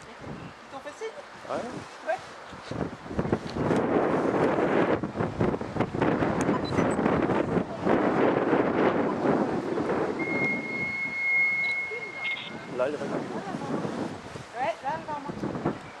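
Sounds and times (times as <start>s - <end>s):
high steam whistle: 10.2s - 12.6s.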